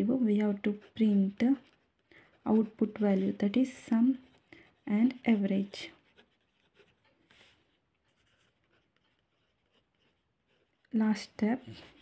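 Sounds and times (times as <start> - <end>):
pen scratching on paper: 0.4 - 12.0.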